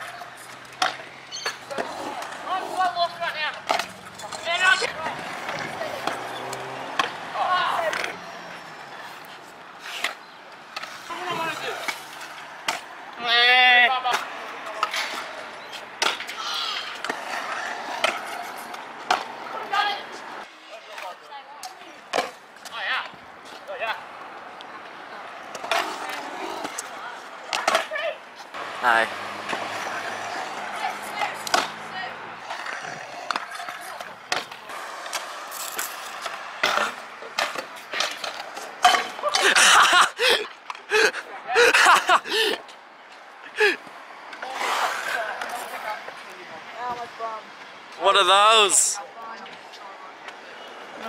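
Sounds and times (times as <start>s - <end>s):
scooter wheels rolling on concrete: 0.0s - 51.0s.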